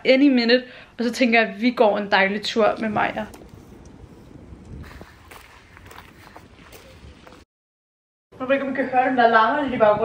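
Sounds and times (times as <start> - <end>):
wind rumble on microphone: 2.2 - 7.4, 9.1 - 10.0
footsteps on paved path: 2.4 - 7.4.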